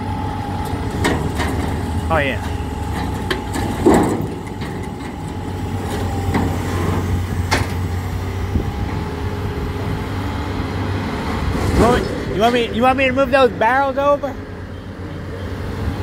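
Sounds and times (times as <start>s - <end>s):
diesel engine running: 0.0s - 16.0s.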